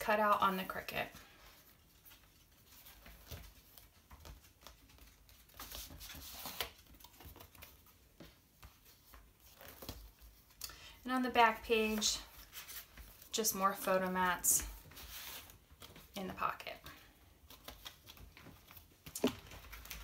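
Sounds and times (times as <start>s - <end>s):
stiff pages rustling and tapping: 1.4s - 10.6s, 11.5s - 13.3s, 13.9s - 20.0s.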